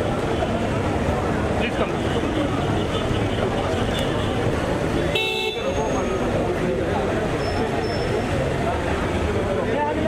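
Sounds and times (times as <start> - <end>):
crowd voices: 0.0 - 10.0
street traffic: 0.0 - 10.0
vehicle horn honk: 5.1 - 5.9.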